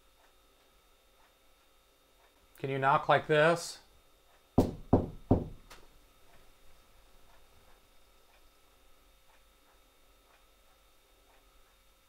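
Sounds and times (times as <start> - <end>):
faint steady ticking: 0.0 - 12.0
hand knocking on hard surface: 4.6 - 5.6.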